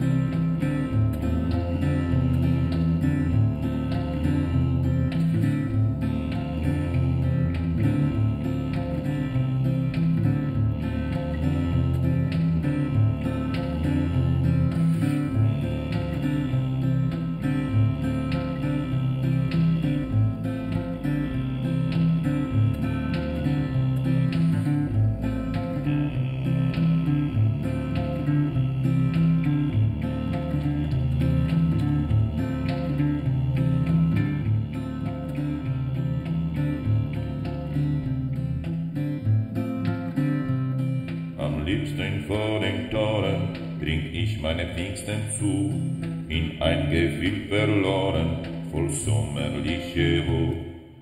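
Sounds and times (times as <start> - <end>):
guitar plucked and strummed: 0.0 - 50.8.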